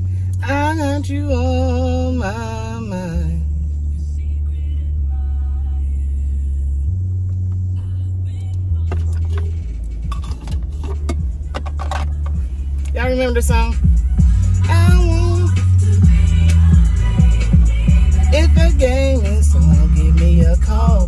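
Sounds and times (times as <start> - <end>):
rnb song on car radio: 0.0 - 21.0
person singing: 14.2 - 21.0.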